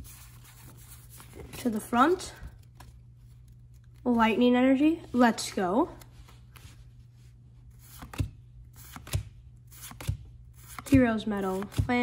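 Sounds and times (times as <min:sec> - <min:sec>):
cards sliding: 0:07.7 - 0:11.8.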